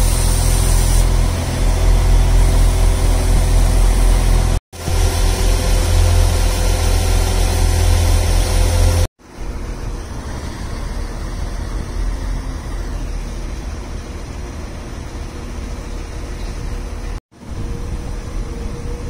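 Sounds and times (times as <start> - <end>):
diesel train engine idling: 0.0 - 17.2.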